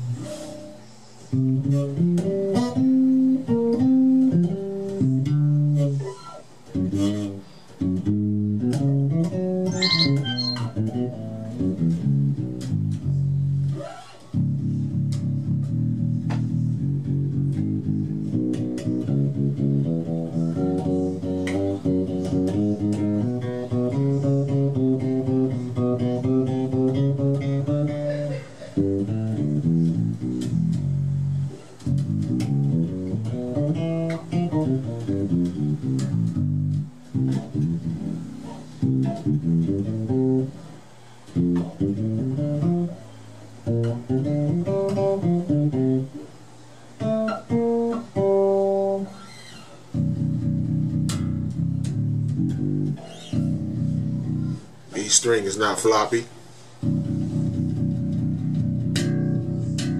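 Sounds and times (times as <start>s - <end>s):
bass guitar playing: 0.0s - 49.2s, 49.8s - 56.0s, 56.6s - 59.9s.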